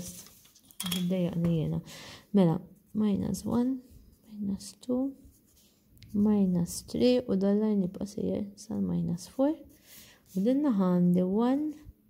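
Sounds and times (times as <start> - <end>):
woman speaking: 0.8 - 5.3, 6.0 - 9.7, 10.3 - 11.9.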